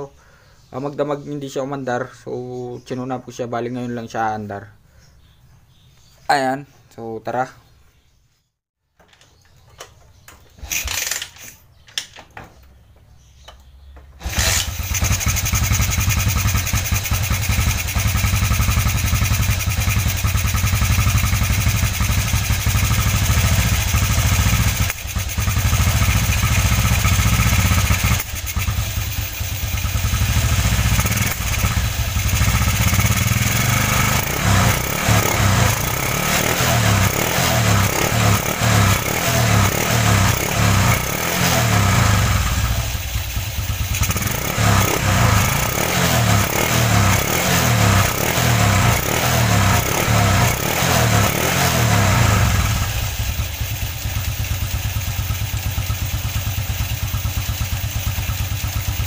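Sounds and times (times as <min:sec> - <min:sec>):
motorcycle engine running: 0:14.2 - 0:59.0.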